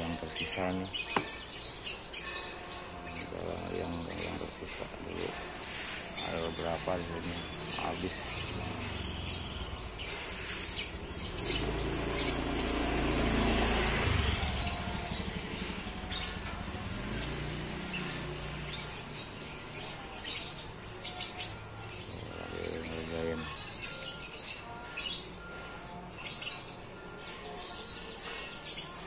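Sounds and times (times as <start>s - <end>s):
small birds chirping: 0.0s - 29.0s.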